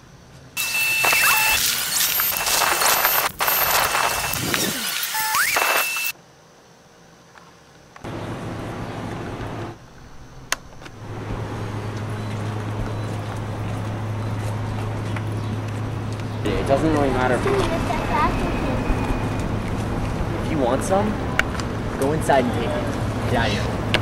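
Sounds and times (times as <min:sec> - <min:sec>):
high beep tones: 0:00.6 - 0:06.1
electronic static hiss: 0:00.6 - 0:06.2.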